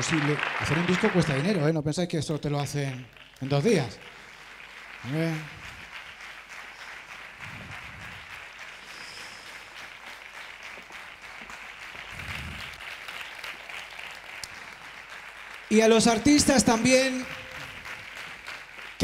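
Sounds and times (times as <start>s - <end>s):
audience applauding: 0.0s - 1.8s, 2.4s - 19.0s.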